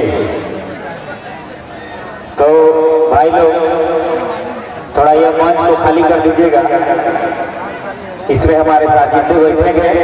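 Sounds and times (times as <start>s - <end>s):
man speaking over loudspeaker: 0.0s - 1.3s, 2.4s - 10.0s
crowd murmur: 0.0s - 10.0s.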